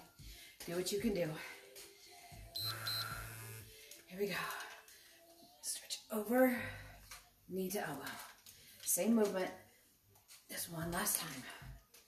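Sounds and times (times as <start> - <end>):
short high beeps: 2.6 - 3.6.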